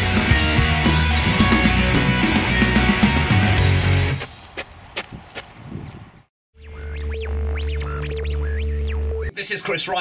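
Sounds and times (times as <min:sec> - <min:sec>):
rock music: 0:00.0 - 0:04.3
radio tuning hum and whistles: 0:06.6 - 0:09.8.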